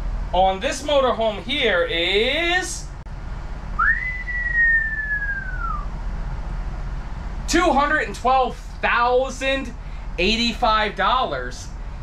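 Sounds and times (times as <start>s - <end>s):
low steady hum: 0.0s - 12.0s
person whistling a sliding note: 3.8s - 5.9s.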